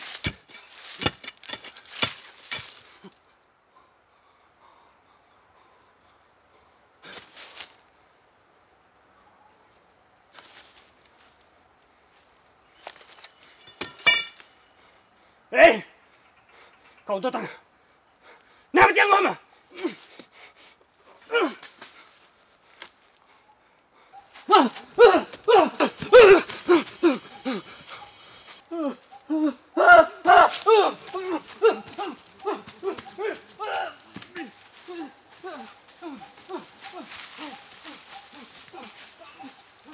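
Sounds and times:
rustling in dry leaves: 0.0s - 3.2s, 7.0s - 7.9s, 10.3s - 13.7s, 24.3s - 39.9s
wordless vocal cries: 24.3s - 39.9s
faint high chirps: 25.4s - 29.3s.

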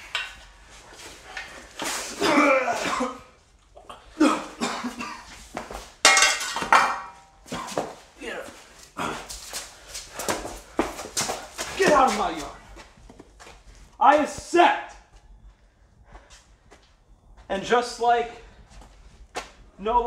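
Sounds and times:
men yelling: 11.7s - 12.6s.

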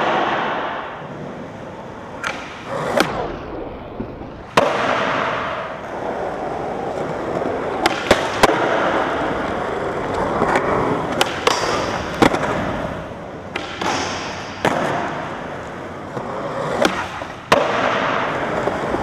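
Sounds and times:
skateboard wheels rolling: 0.0s - 19.0s
skateboard clacks and knocks: 6.2s - 12.7s.

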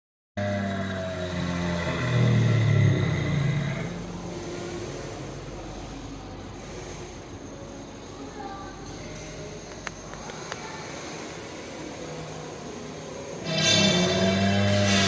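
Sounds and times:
dinosaur roar from speaker: 0.4s - 4.2s, 13.4s - 15.0s.

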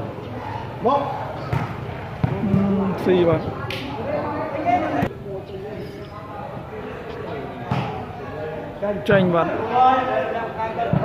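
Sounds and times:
spectators chattering: 0.0s - 11.0s
volleyball struck by hand: 7.7s - 8.0s.

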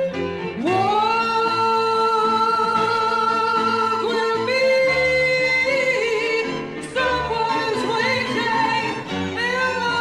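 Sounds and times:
strings and bass accompaniment: 0.0s - 10.0s.

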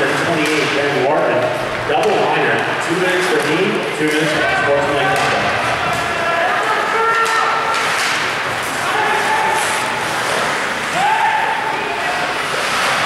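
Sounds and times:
clicks of hockey sticks and puck: 0.4s - 0.8s, 1.4s - 4.4s, 7.1s - 8.4s
people shouting and calling: 4.1s - 13.0s.

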